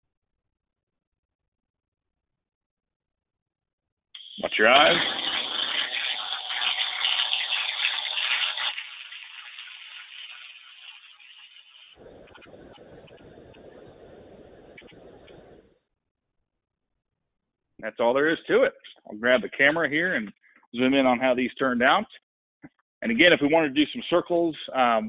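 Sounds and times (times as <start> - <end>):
welding arc crackling buzz: 4.2 - 15.7.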